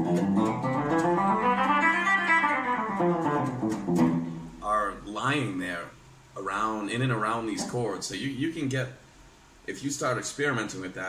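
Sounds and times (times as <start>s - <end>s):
electric guitar picking scale notes: 0.0s - 4.6s.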